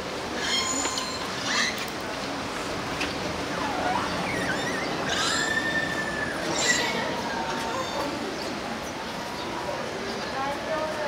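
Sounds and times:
steady background noise: 0:00.0 - 0:11.0
orcas squealing and whistling: 0:00.4 - 0:01.8, 0:03.5 - 0:08.0.

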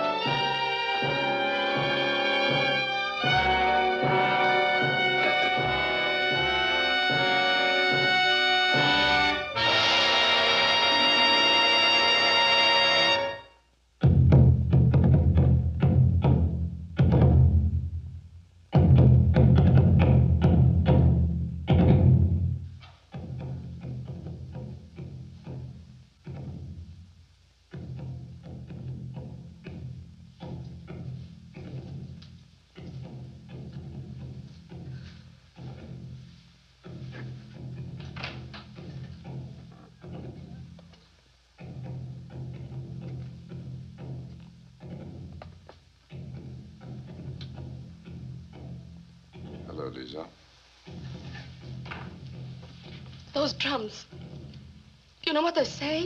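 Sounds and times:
held orchestral chord: 0:00.0 - 0:13.6.

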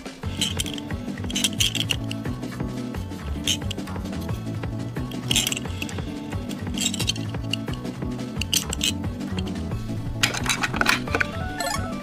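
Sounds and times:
background music: 0:00.0 - 0:12.0
metallic clinks of toy cars: 0:00.3 - 0:02.3, 0:03.4 - 0:03.8, 0:05.1 - 0:09.6.

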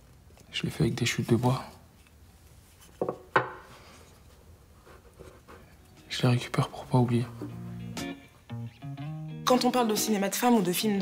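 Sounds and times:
wooden blocks knocking together: 0:03.0 - 0:03.7.

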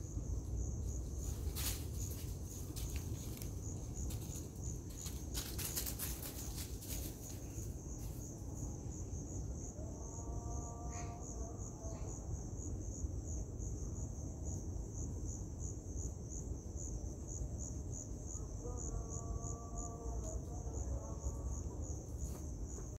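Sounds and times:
insect chirping: 0:00.0 - 0:22.9
lower pitched insect call: 0:00.0 - 0:22.9.

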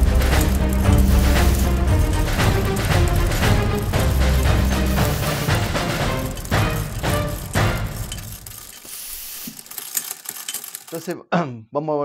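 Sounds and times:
irregular mechanical clicking: 0:00.0 - 0:11.2
steam hiss: 0:08.8 - 0:09.6.

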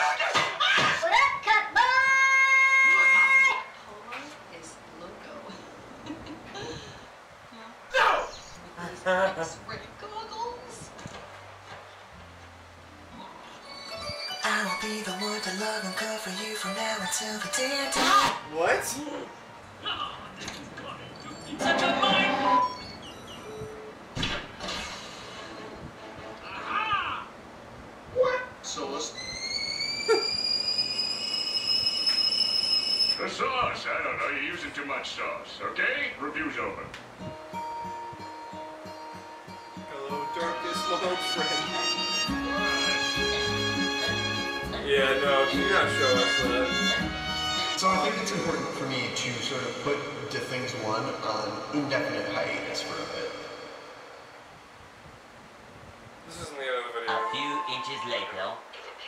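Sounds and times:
high-pitched squealing tone: 0:29.0 - 0:33.3.

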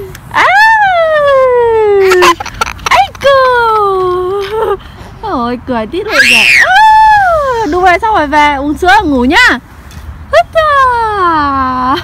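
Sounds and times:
toddler squealing: 0:06.1 - 0:07.8.

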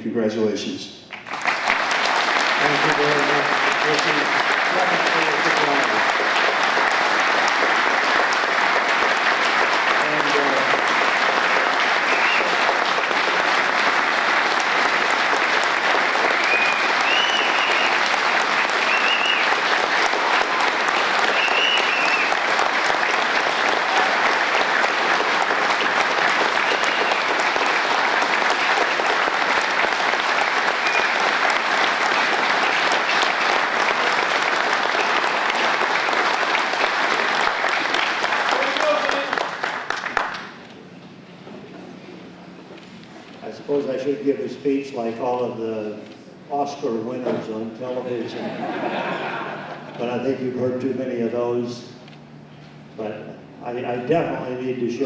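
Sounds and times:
audience applauding: 0:01.1 - 0:40.8
short cheers: 0:20.2 - 0:22.4.

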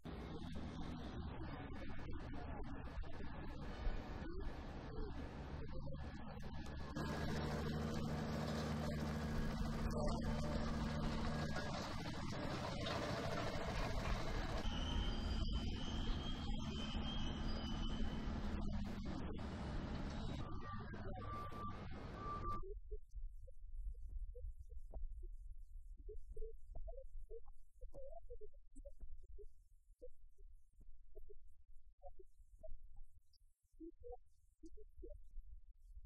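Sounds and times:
diesel machinery humming: 0:04.0 - 0:22.6
short warning beeps: 0:20.2 - 0:22.7.

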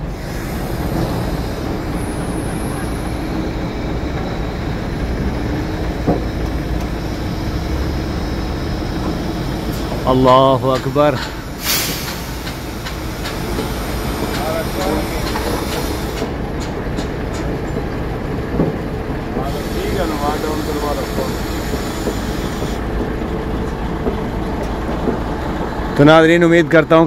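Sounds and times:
crane diesel engine running: 0:00.0 - 0:27.0
faint voices: 0:14.2 - 0:15.6.

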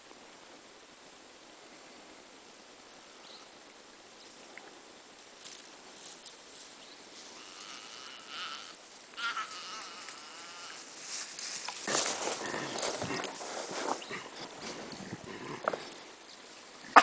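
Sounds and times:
rustling: 0:05.1 - 0:17.0
animal bleating distress cry: 0:07.3 - 0:11.0.

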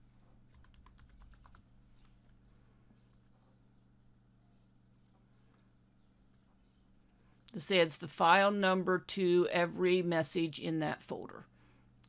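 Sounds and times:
faint low hum: 0:00.0 - 0:12.0
keyboard typing: 0:00.5 - 0:02.2, 0:04.9 - 0:05.2.

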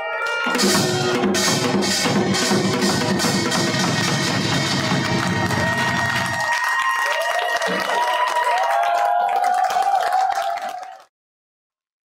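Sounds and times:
audience applauding: 0:03.4 - 0:11.1.

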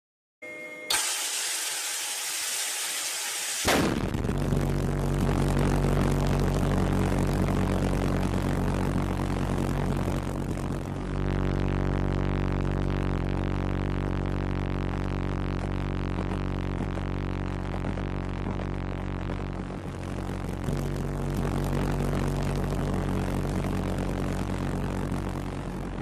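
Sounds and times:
pulsejet engine buzzing drone: 0:00.9 - 0:26.0.

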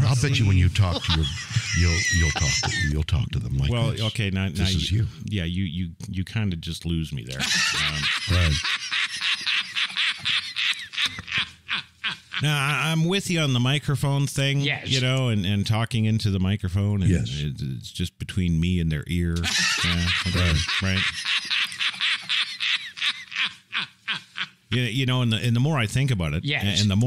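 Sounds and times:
duck-like squawking cackle: 0:19.5 - 0:24.6.

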